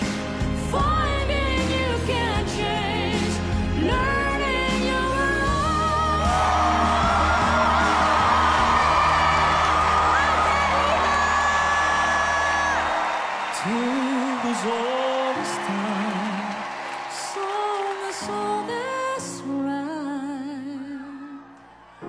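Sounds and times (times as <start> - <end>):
audience cheering and screaming: 5.4 - 19.3, 21.0 - 22.0.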